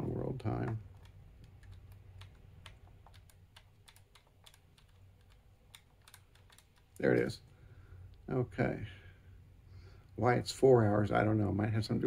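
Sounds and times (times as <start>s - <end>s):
low steady hum: 0.0s - 12.0s
calculator keys clicking: 0.6s - 7.2s.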